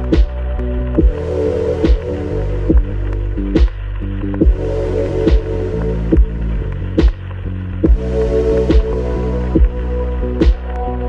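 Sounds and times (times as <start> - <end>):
electronic chillout music: 0.0 - 11.0.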